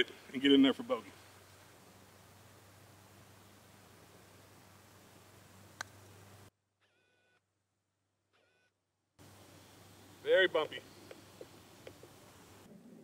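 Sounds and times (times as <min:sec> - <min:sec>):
faint background hiss: 0:00.0 - 0:06.5, 0:09.2 - 0:13.0.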